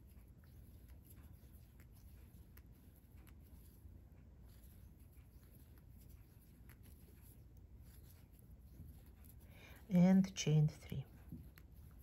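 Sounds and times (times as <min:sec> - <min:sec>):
crochet hook ticks and rustles: 0:00.0 - 0:12.0.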